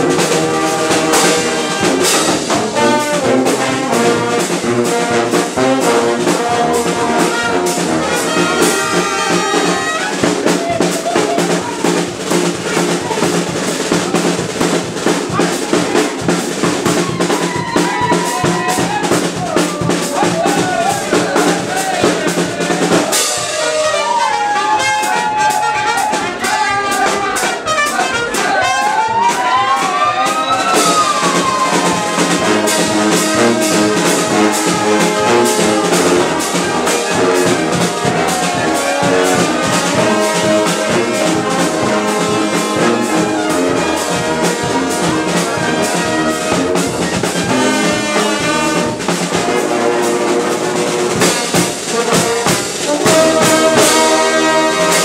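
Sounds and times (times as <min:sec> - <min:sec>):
bass drum and hand cymbals: 0:00.0 - 0:55.0
brass street band playing: 0:00.0 - 0:55.0
lead line with pitch slides: 0:00.0 - 0:55.0.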